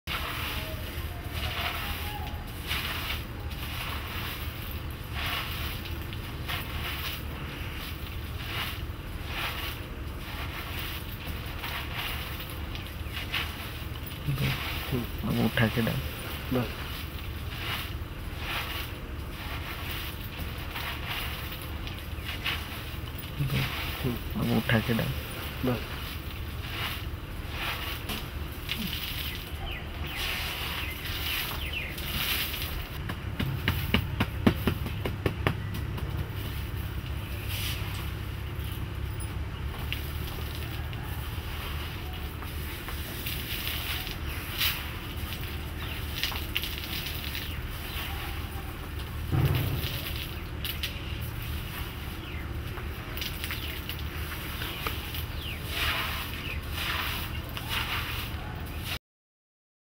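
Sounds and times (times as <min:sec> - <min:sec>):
low outdoor rumble: 0:00.0 - 0:59.0
hands raking through sandy soil: 0:00.1 - 0:59.0.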